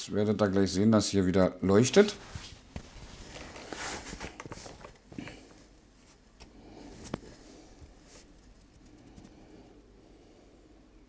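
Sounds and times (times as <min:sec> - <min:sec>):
soft hiss: 0:01.6 - 0:11.0.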